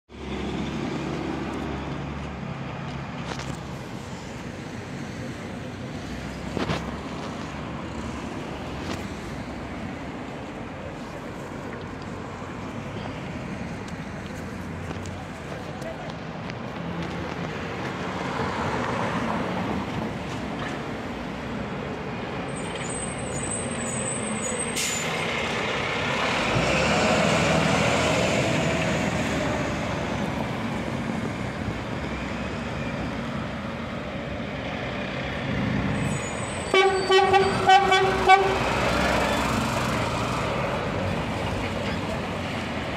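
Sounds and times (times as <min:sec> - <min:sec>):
fire engine diesel engines: 0:00.1 - 0:42.9
fire engine horn blasts: 0:36.6 - 0:38.7.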